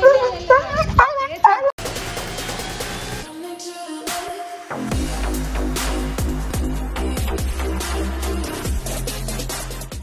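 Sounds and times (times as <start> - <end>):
electronic music: 1.8 - 10.0.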